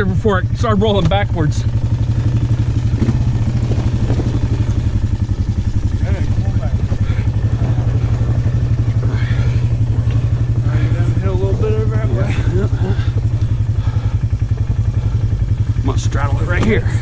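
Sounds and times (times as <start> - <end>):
atv engine running at low revs: 0.0 - 17.0.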